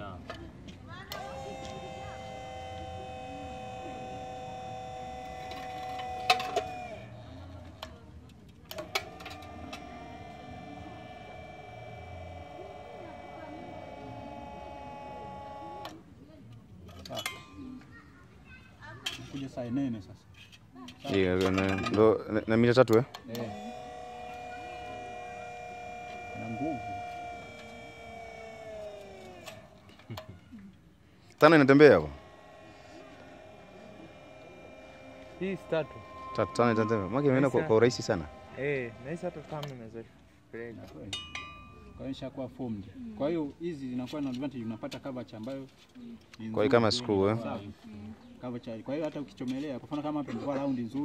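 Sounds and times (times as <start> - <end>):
electric pump motor whining: 0.0 - 17.6, 20.9 - 47.7.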